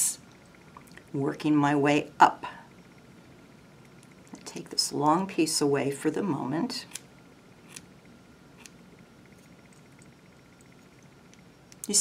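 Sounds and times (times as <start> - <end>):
scissor blades ticking: 8.6 - 11.9.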